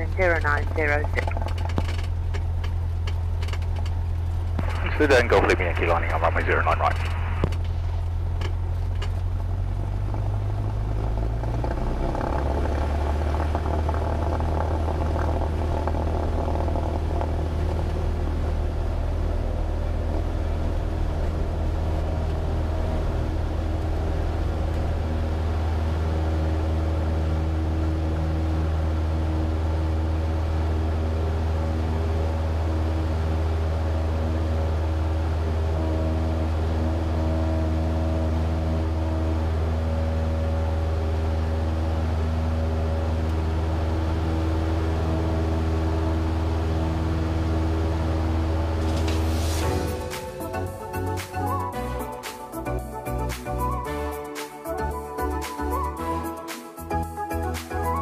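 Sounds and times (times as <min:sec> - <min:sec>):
airplane piston engine: 0:00.0 - 0:57.9.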